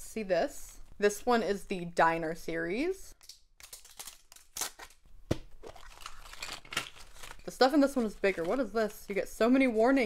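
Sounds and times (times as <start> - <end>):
wrapper tearing and crinkling: 3.2 - 5.0, 5.6 - 8.7.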